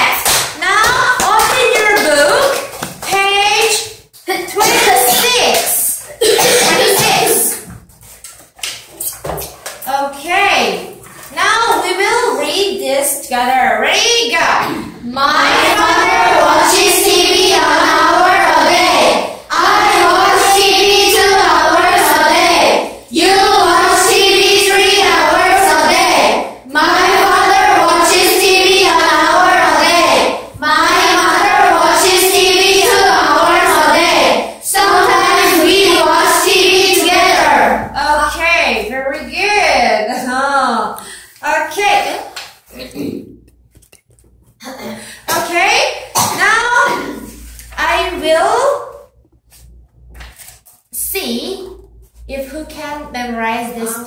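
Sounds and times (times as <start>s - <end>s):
children's voices: 0.0s - 7.8s, 9.8s - 43.3s
paper rustling: 7.7s - 9.8s, 49.5s - 50.9s.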